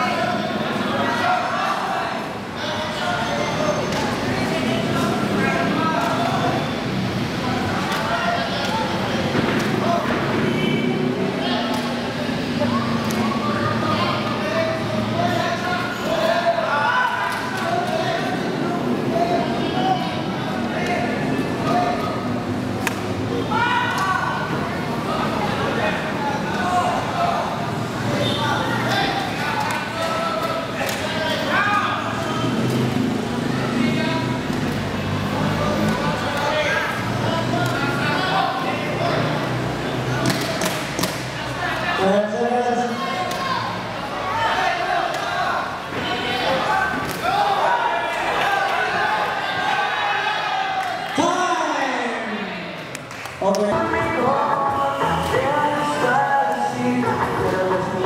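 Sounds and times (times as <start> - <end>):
people shouting: 23.4 - 24.6, 42.8 - 52.8.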